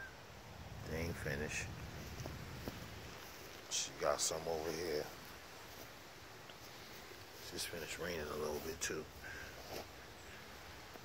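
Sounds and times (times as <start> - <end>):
faint bird call: 0.0 - 0.2.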